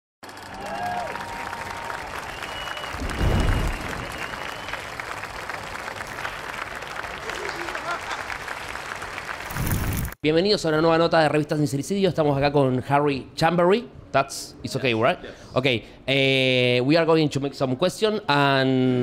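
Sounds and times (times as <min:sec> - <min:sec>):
crowd applauding: 0:00.2 - 0:10.2
low boom: 0:02.9 - 0:04.7.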